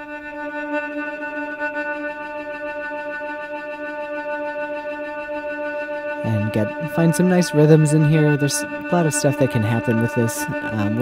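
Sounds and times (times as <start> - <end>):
granular synthesizer tone: 6.1 - 11.0.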